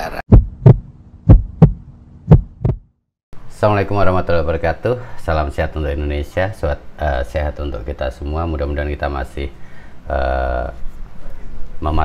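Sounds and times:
deep heartbeat-like thumps: 0.3s - 3.0s
faint steady hum: 3.4s - 12.0s.

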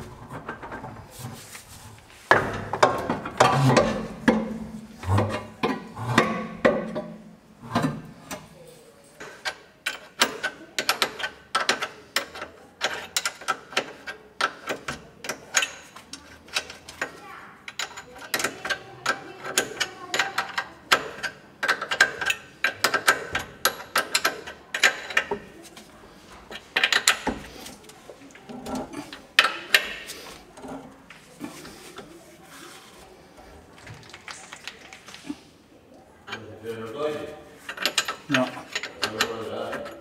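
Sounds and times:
metal joint clicking and clacking: 9.2s - 25.6s, 26.5s - 27.5s, 37.7s - 40.0s.

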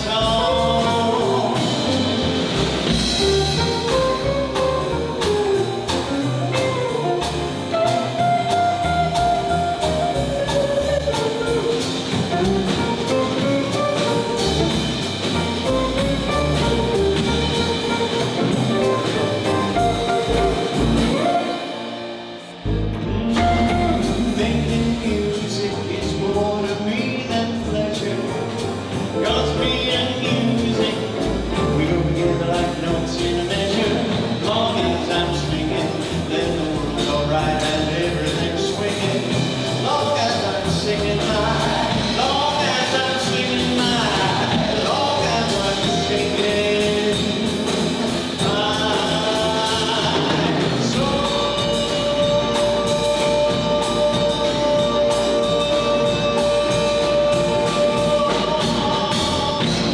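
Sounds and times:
jazz combo playing: 0.0s - 59.9s.

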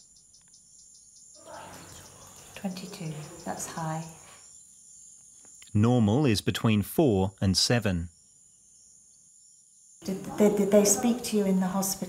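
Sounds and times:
insects chirping: 0.0s - 12.0s.

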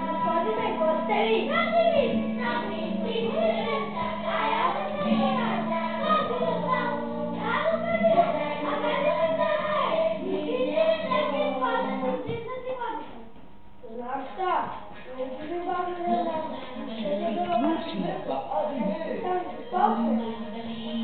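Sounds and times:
children singing: 0.0s - 12.4s.

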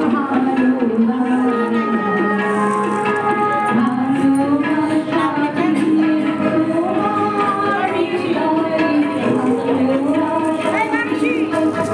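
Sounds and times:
group devotional singing: 3.7s - 10.7s.

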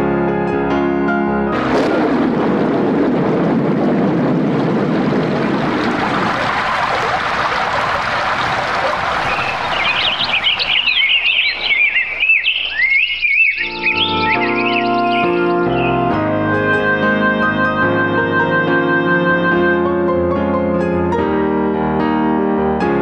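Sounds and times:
noisy ambience: 1.6s - 19.5s
birds chirping: 7.7s - 19.8s
keyboard music: 13.6s - 23.0s.

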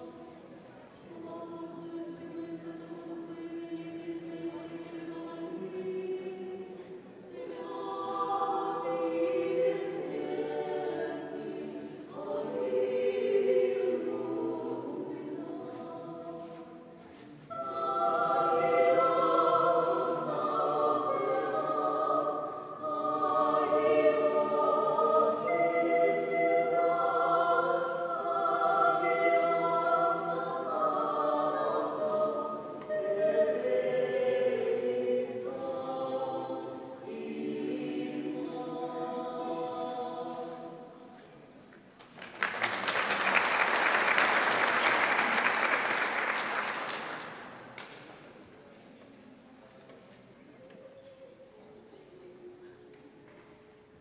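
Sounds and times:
mixed choir singing a cappella: 0.0s - 41.5s, 42.4s - 48.3s.

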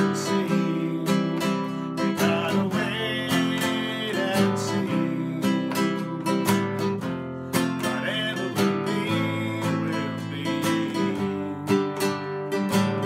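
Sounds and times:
classical guitar strumming: 0.0s - 13.0s
man singing: 0.0s - 13.0s.

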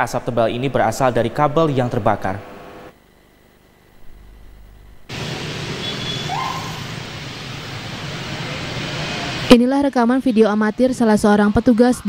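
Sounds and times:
road traffic noise: 0.0s - 2.9s, 5.1s - 11.1s.

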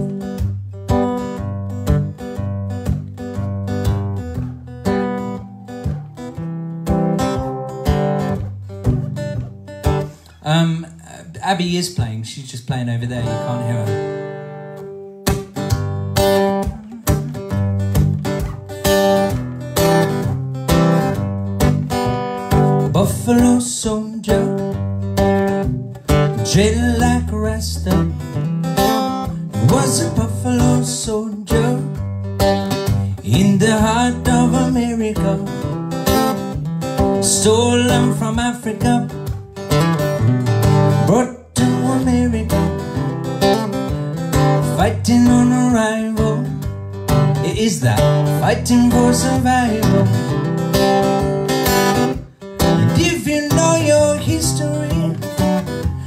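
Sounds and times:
acoustic guitar strumming: 0.0s - 56.0s
man singing: 10.3s - 14.3s, 16.5s - 17.5s, 22.7s - 24.9s, 26.2s - 28.5s, 29.3s - 32.1s, 32.9s - 36.4s, 37.1s - 39.3s, 40.9s - 43.2s, 44.3s - 51.1s, 52.6s - 56.0s.

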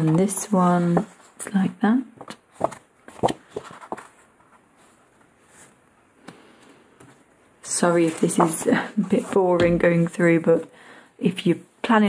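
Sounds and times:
paper sheets tapping and rustling: 0.0s - 1.3s, 2.2s - 4.6s, 8.0s - 10.1s.

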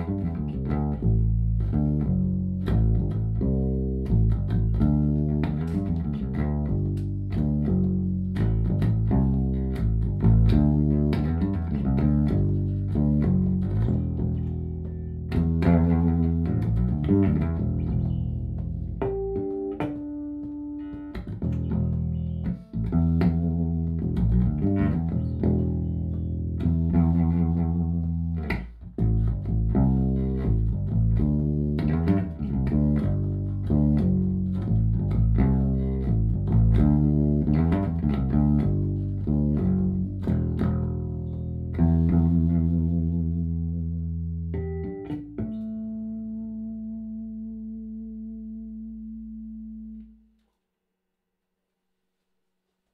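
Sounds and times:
plucked electric bass notes: 0.0s - 50.4s.

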